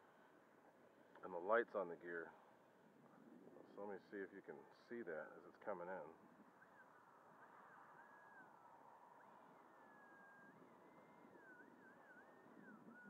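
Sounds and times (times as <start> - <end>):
electric ducted fan whine: 0.0 - 13.0.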